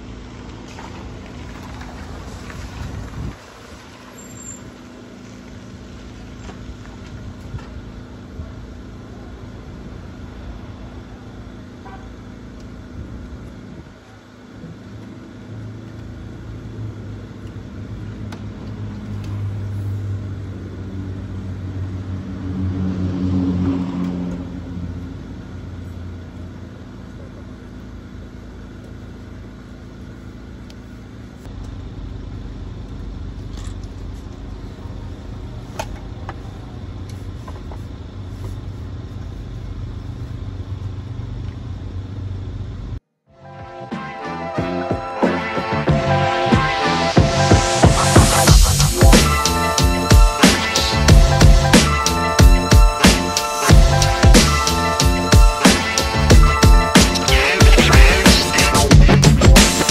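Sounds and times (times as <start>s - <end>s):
minivan engine idling: 0.0s - 43.0s, 44.8s - 59.9s.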